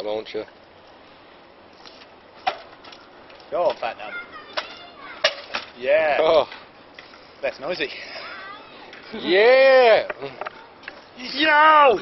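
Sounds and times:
bike knocking on concrete: 0:02.4 - 0:05.9.

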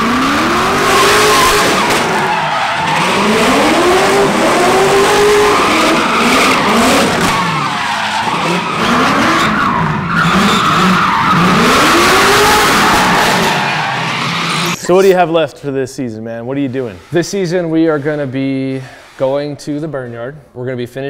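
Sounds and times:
car engine revving: 0:00.0 - 0:14.8
tyres squealing: 0:00.9 - 0:15.2.

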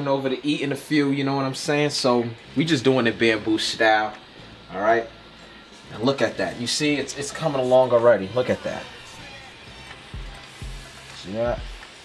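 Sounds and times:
low background music: 0:00.0 - 0:12.0
hot oil sizzling: 0:00.1 - 0:12.0.

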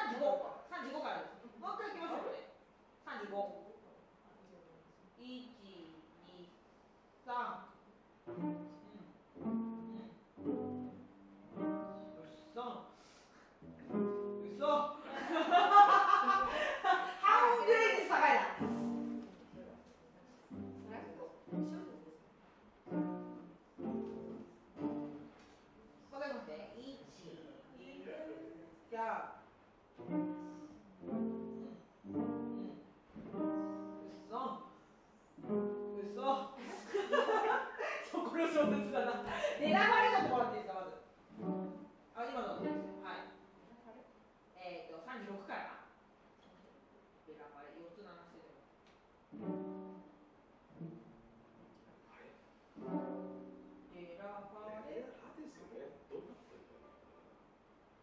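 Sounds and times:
string ensemble playing short phrases: 0:08.2 - 0:12.6, 0:18.0 - 0:19.8, 0:20.5 - 0:26.1, 0:30.0 - 0:34.7.

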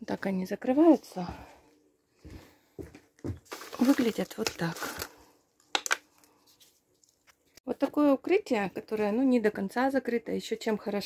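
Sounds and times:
plastic clips clattering: 0:03.6 - 0:06.1.

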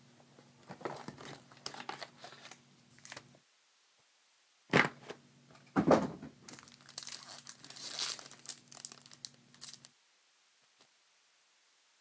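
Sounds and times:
foil wrapper tearing and crinkling: 0:00.8 - 0:03.2, 0:06.5 - 0:09.9.

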